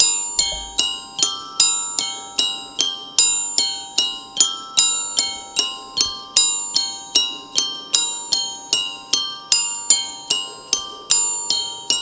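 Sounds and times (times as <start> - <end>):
glockenspiel notes: 0.0 - 12.0.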